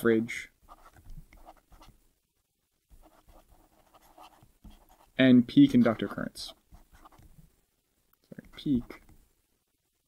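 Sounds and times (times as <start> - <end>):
stylus writing on pen tablet: 0.7 - 2.0, 2.9 - 7.4, 8.4 - 9.1.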